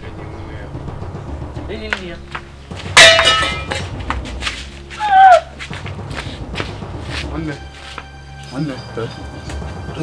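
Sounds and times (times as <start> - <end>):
metal hoe blade clanging on ground: 3.0 - 4.0.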